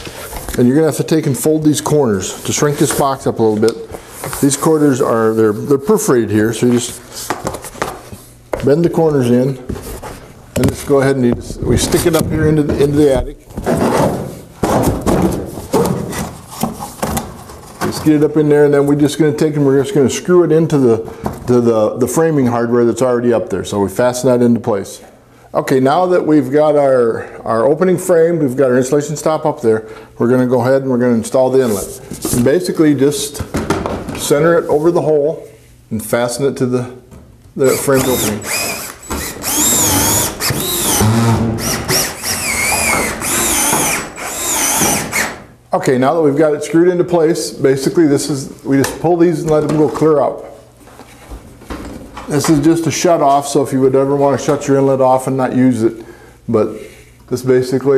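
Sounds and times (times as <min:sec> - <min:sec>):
cordless drill driving screws: 0:37.7 - 0:45.4.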